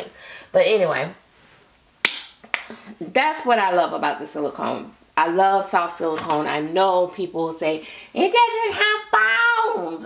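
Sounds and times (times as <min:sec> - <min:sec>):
sharp hand smacks: 0:02.0 - 0:02.8.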